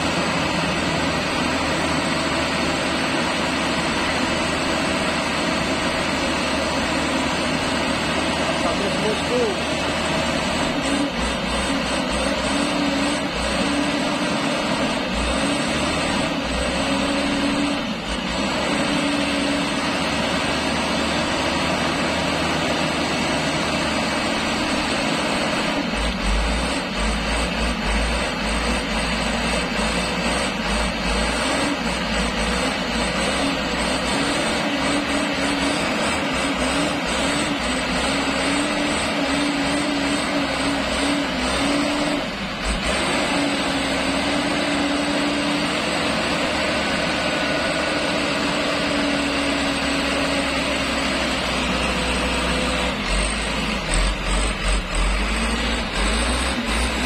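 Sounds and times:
diesel truck engine straining: 0:00.0 - 0:57.0.

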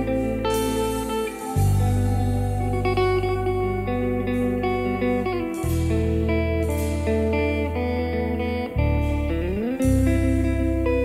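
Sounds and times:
guitar: 0:00.0 - 0:11.0
held bass note: 0:00.0 - 0:11.0.

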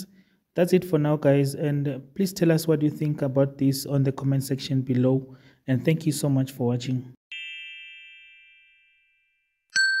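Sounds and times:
electronic ding chime: 0:07.3 - 0:10.0.

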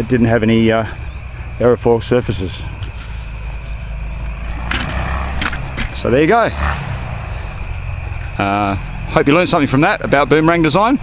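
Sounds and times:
wind buffeting microphone: 0:00.0 - 0:09.1.

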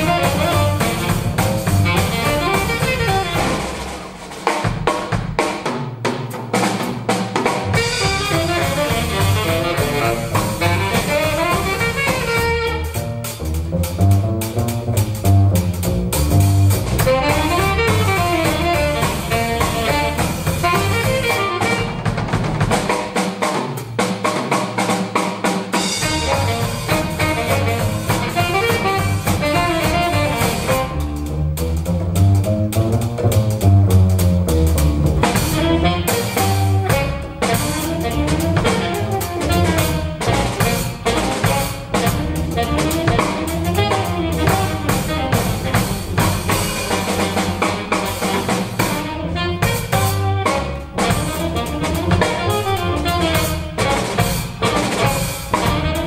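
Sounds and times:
saxophone: 0:00.0 - 0:03.9, 0:07.8 - 0:13.5, 0:16.8 - 0:22.4, 0:25.8 - 0:31.4, 0:35.1 - 0:56.0
double bass: 0:00.0 - 0:56.0
drum kit with cymbals: 0:00.0 - 0:56.0.

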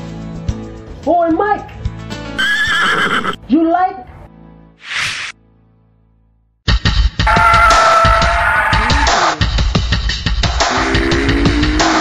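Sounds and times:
background music: 0:00.0 - 0:12.0
horse whinny: 0:02.4 - 0:03.4, 0:07.3 - 0:09.3.

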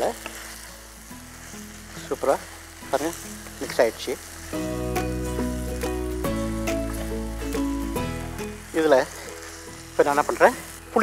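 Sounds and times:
food sizzling in a pot: 0:00.0 - 0:11.0
background music with bass line: 0:04.5 - 0:08.9.

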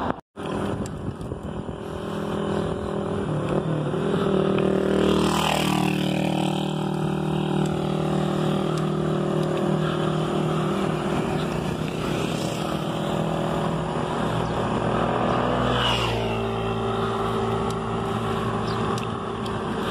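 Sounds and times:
road noise: 0:00.0 - 0:19.9
small motorcycle engines passing: 0:00.4 - 0:19.9
vehicle passing by: 0:01.6 - 0:19.9.

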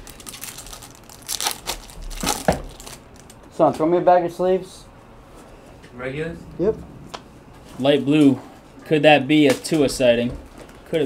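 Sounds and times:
card pack wrappers crinkling: 0:00.0 - 0:03.5.

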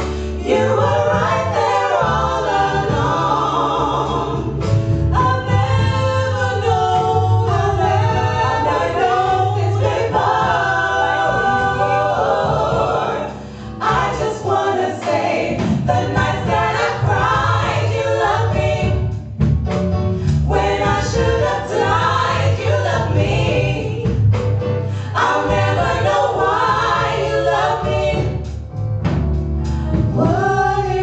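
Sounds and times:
women singing gospel in harmony: 0:00.0 - 0:19.2, 0:20.4 - 0:24.3, 0:24.9 - 0:28.6, 0:30.0 - 0:31.0.

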